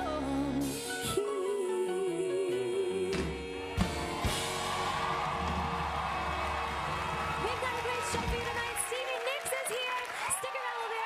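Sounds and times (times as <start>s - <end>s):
audience cheering: 3.9s - 11.0s.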